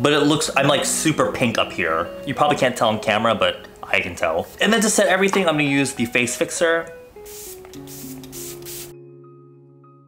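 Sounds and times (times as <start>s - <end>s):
soft background music: 0.0s - 10.0s
spray bottle spritzes: 7.2s - 8.9s.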